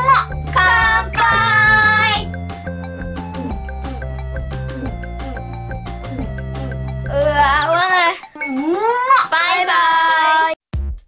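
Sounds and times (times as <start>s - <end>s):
child singing: 0.0s - 2.3s
music: 0.0s - 11.0s.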